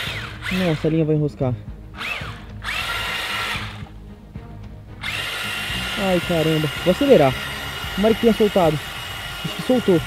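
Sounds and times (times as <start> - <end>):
small electric motor whining: 0.0 - 1.0, 2.0 - 4.0, 5.0 - 10.0.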